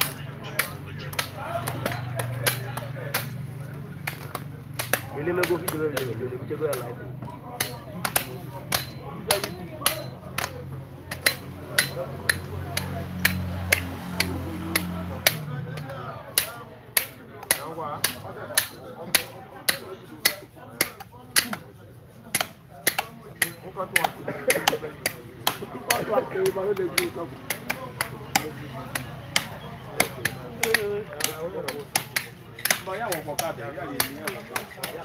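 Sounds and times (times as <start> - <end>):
machetes chopping carcass on wood: 0.0 - 3.4, 4.0 - 21.7, 22.3 - 35.0.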